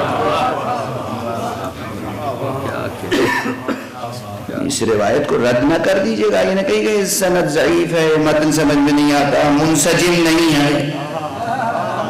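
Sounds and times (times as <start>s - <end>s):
cough: 3.1s - 4.0s
man's voice: 4.5s - 11.1s.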